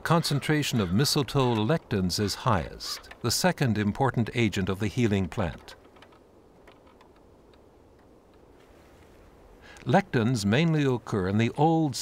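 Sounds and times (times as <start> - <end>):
faint ticks: 5.4 - 9.9.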